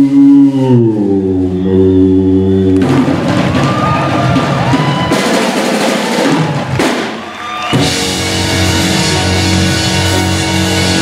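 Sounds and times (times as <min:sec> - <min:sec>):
drum roll: 0:02.7 - 0:11.0.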